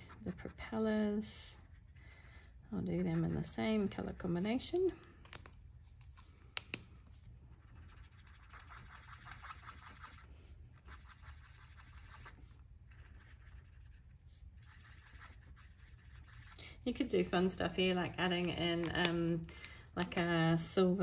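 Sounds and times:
marker scratching on paper: 0:07.1 - 0:16.6.

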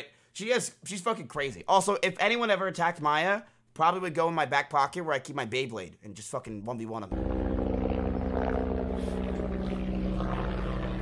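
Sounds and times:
helicopter flying overhead: 0:07.2 - 0:11.0.

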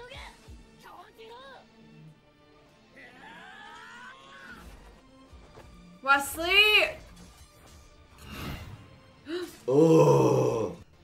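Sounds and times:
man's drawn-out battle cry: 0:09.7 - 0:10.8.

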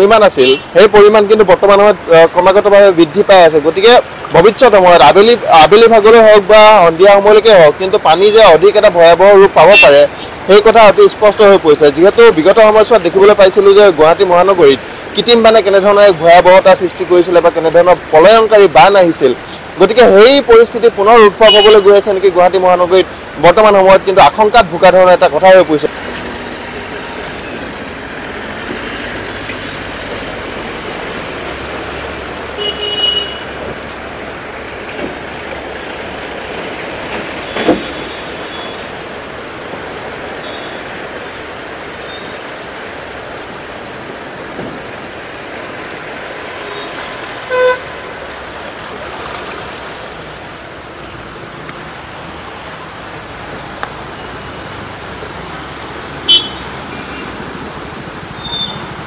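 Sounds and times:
traffic driving through floodwater: 0:00.0 - 0:59.0
vehicle horn: 0:21.5 - 0:21.8, 0:32.6 - 0:33.6, 0:47.5 - 0:48.0, 0:56.3 - 0:56.6.

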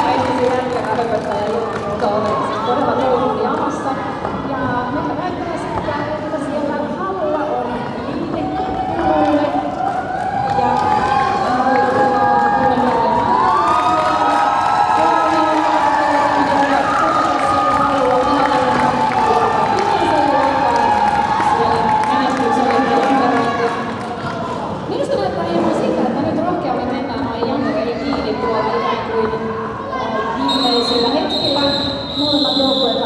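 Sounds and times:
crowd cheering and shouting: 0:07.6 - 0:24.9, 0:27.4 - 0:33.0.

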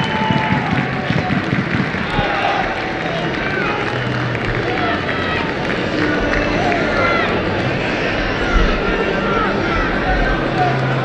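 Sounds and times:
crowd calls and shouts: 0:00.0 - 0:11.0
crowd murmur: 0:00.0 - 0:11.0.

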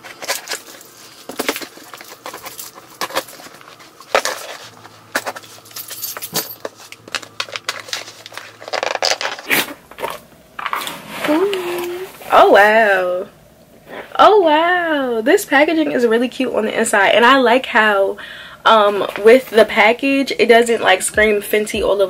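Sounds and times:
paper rustling: 0:00.0 - 0:05.9, 0:06.6 - 0:12.0.

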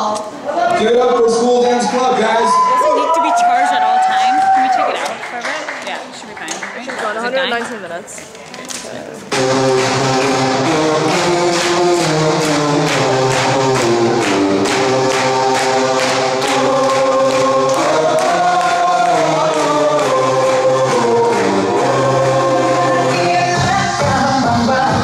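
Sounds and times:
dance music with sung vocals: 0:09.3 - 0:25.0.

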